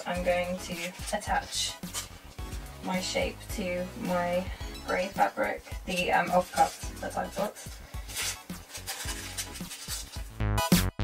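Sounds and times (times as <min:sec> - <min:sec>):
rustle of paper and fabric: 0:00.0 - 0:03.1, 0:04.9 - 0:10.3
background music with steady beat: 0:00.0 - 0:11.0.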